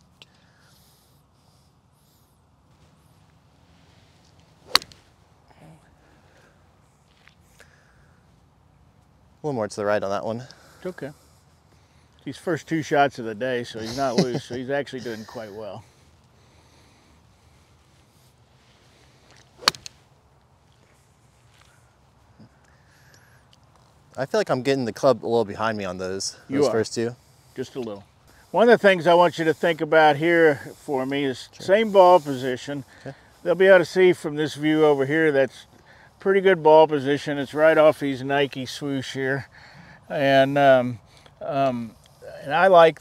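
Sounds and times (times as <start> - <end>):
golf club swish: 3.8 - 5.2, 19.3 - 20.1
golf club striking ball: 4.6 - 5.1, 19.6 - 20.0.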